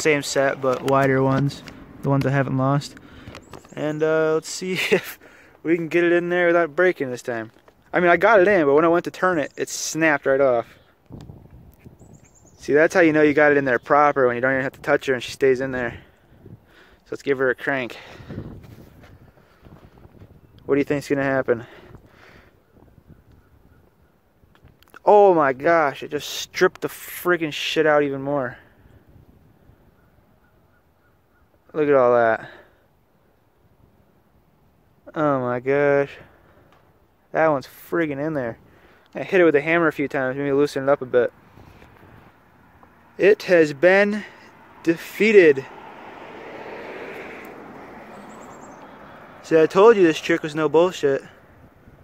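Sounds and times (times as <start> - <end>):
outdoor background noise: 0.0 - 52.0.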